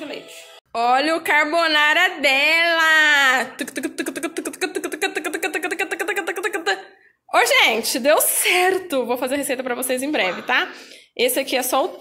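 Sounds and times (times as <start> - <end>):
woman's rapid pulsing vocalisation: 3.5 - 6.8.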